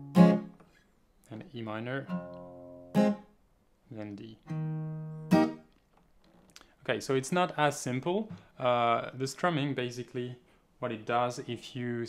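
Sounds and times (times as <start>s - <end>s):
acoustic guitar chord: 0.0s - 0.6s.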